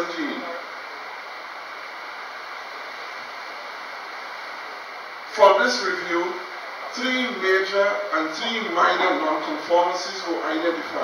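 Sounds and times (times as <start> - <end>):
faint high whine: 0.0 - 11.0
steady background hiss: 0.0 - 11.0.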